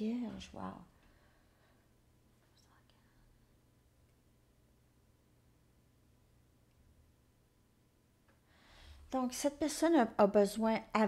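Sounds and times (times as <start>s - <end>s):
faint soft sounds: 0.0s - 9.2s
faint low hum: 0.0s - 11.0s.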